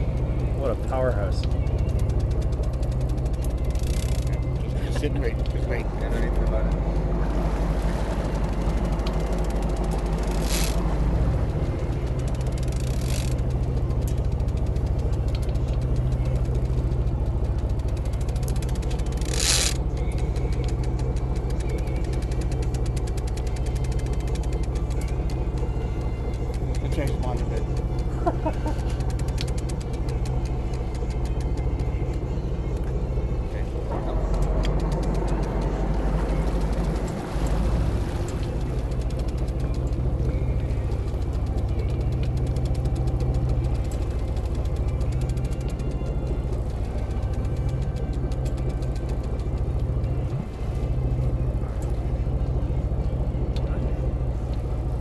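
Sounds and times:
boat engine droning: 0.0 - 55.0.

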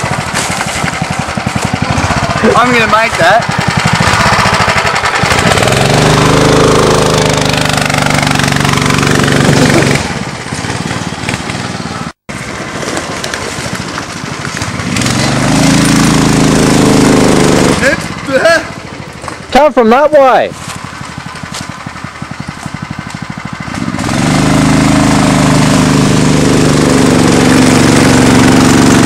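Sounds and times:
go-kart engine revving: 0.0 - 29.0.

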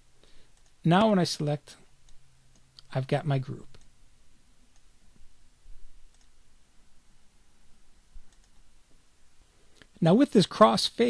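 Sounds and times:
computer mouse clicks: 0.5 - 1.1, 6.1 - 6.4, 8.3 - 8.7.

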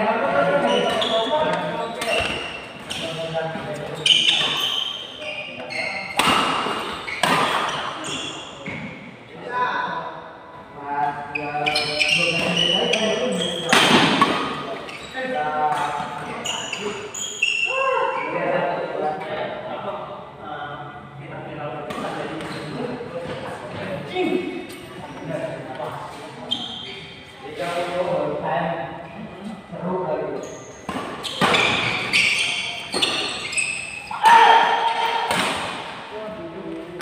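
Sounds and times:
players' voices and shouts: 31.3 - 37.0.

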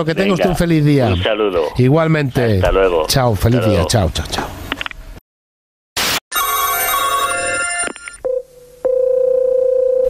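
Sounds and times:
telephone bell ringing: 6.3 - 10.0
telephone line tone: 6.3 - 10.0.

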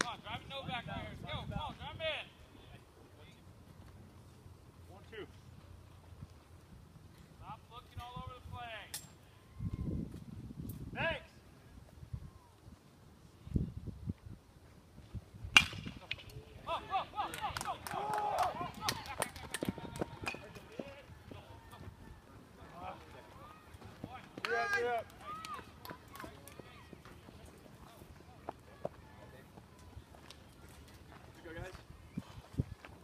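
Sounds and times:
baseball bat cracking ball: 15.5 - 16.3
faint voices talking: 16.4 - 33.0
spectators shouting: 16.6 - 20.4.

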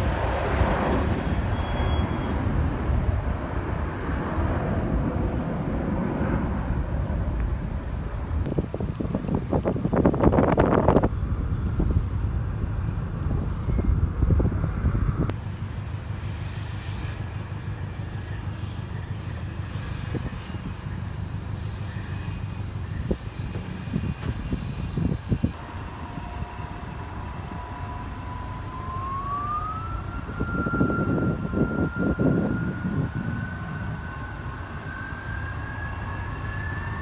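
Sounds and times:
distant jet engines rumbling: 0.0 - 37.0
thin engine whine rising: 25.5 - 37.0.

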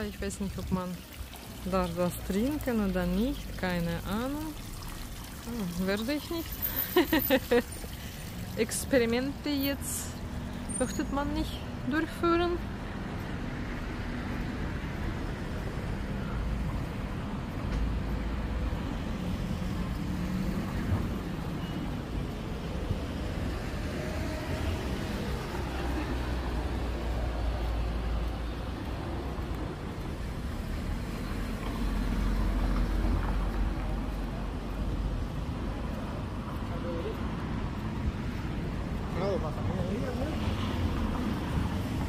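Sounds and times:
road traffic noise: 0.0 - 42.0.

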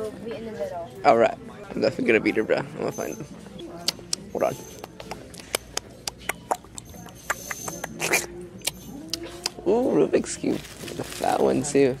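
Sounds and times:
rustling: 10.2 - 12.0.

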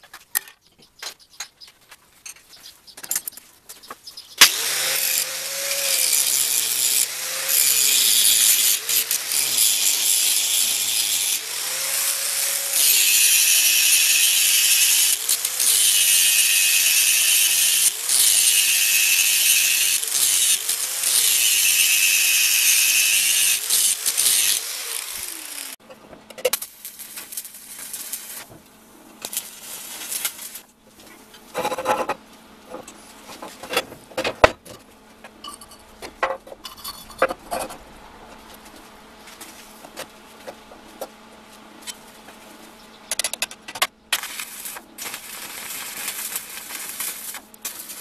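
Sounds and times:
angle grinder cutting steel rod: 4.4 - 25.8.

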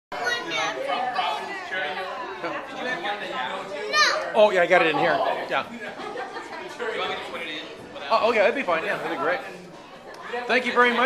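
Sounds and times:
overlapping chatter in a room: 0.1 - 11.0.

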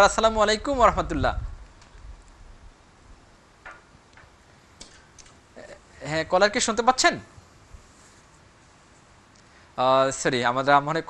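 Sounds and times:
faint irregular clicks: 1.6 - 2.4, 3.6 - 5.4, 9.3 - 9.6.

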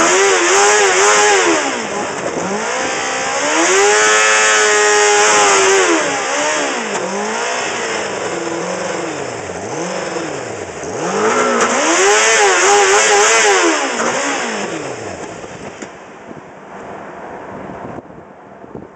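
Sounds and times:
motorcycle engine revving: 0.0 - 16.1.

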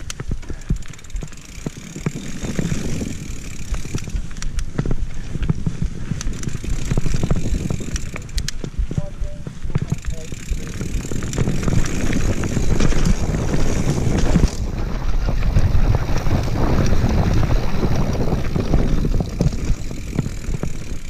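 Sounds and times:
bike clicking and rattling: 0.0 - 21.0
bike tyres rumbling on dirt: 0.0 - 21.0
wind buffeting microphone: 1.6 - 21.0.

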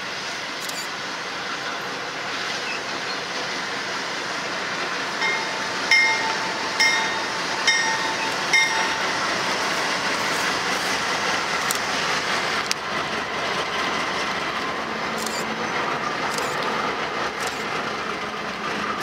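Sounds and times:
freight train passing: 0.0 - 19.0
locomotive bell ringing: 5.1 - 9.9.

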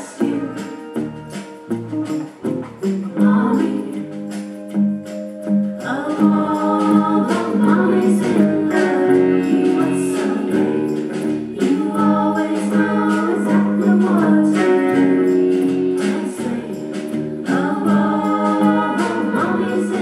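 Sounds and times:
voices singing gospel: 0.0 - 1.8, 2.8 - 20.0.

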